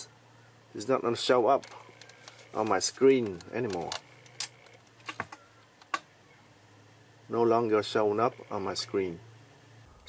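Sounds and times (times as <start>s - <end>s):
plastic camcorder clicks: 1.6s - 6.0s.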